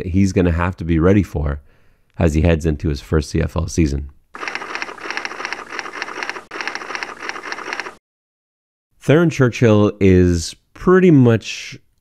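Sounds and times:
keystroke clicks: 4.4 - 8.0.

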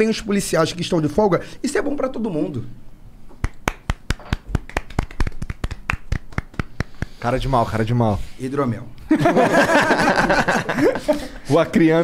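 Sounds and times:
few people clapping: 3.4 - 7.2.

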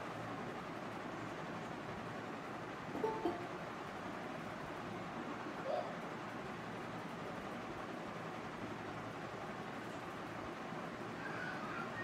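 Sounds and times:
open microphone background noise: 0.0 - 12.0.

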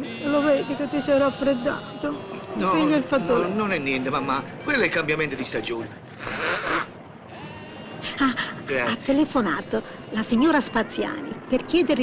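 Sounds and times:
man blowing his nose: 6.2 - 6.9.

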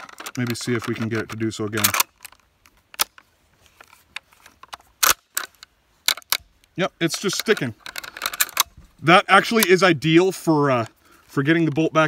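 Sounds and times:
rifle bolt metallic clicks: 0.0 - 3.3, 4.1 - 8.8, 9.4 - 9.8.

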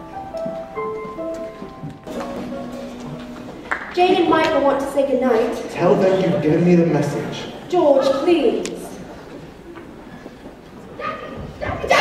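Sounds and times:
faint auditorium room noise: 0.0 - 12.0.

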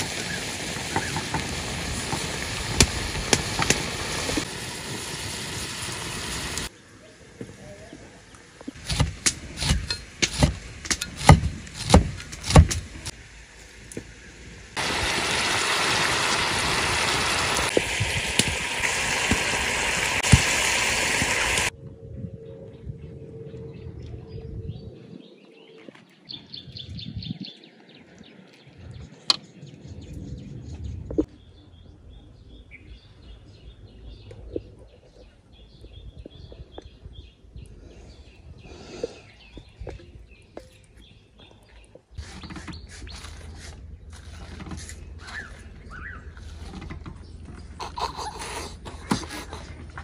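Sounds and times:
loud steady hiss: 0.0 - 11.2, 12.2 - 21.7
cleaver chopping on wooden board: 8.8 - 12.9
bird chirps: 45.0 - 46.4.

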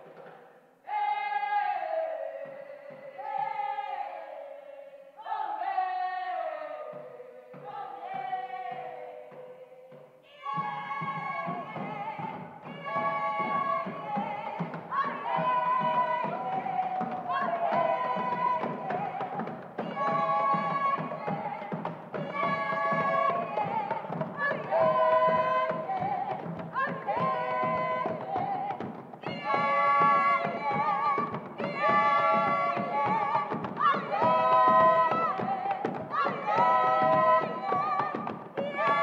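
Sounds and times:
group singing in harmony: 0.0 - 39.0
percussive beat: 7.5 - 39.0.

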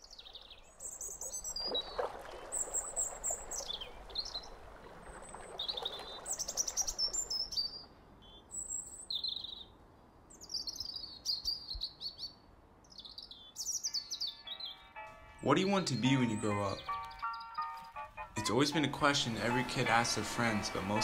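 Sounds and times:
birds chirping and trilling: 0.0 - 21.0
faint sustained music tones: 13.8 - 21.0.

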